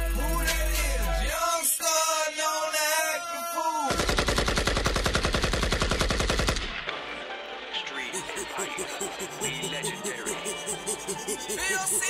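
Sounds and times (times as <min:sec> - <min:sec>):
sung vocal line: 0:00.0 - 0:03.9
machine gun sound effect: 0:08.2 - 0:12.0.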